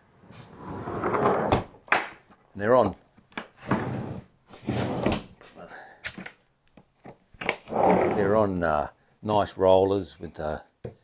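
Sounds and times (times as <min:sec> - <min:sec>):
heavy drawer sliding on rollers: 0:00.2 - 0:01.6, 0:03.6 - 0:05.2, 0:07.7 - 0:08.4.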